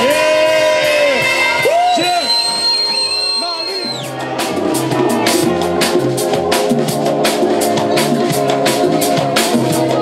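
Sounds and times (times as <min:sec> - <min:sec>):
drums and bass beat: 0:00.0 - 0:10.0
jazz-funk band playing: 0:00.0 - 0:10.0.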